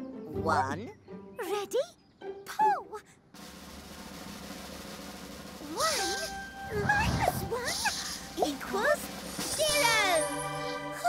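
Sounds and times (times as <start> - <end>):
snare drum roll: 3.4 - 7.6.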